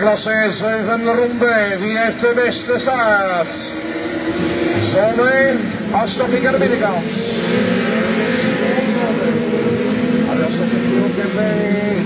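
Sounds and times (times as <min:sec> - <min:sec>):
car engines droning: 0:00.0 - 0:12.0
noise wash: 0:02.2 - 0:11.3.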